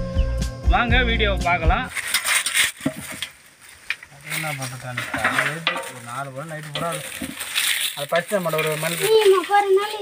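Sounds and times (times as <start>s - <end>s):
dry leaves dropped into metal basin: 1.9s - 10.0s
man talking: 4.1s - 7.3s, 8.0s - 9.5s.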